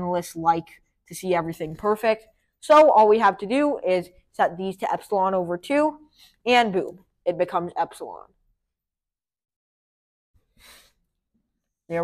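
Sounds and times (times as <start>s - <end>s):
short breath hiss: 10.5s - 11.0s.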